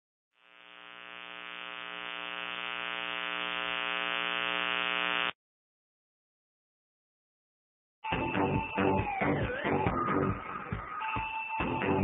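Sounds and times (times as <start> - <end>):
electronic buzzing drone: 0.4 - 5.4.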